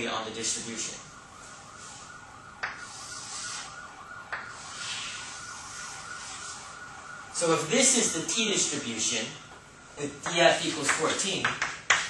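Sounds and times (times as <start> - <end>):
chalk scraping on blackboard: 2.8 - 3.8, 4.4 - 6.8.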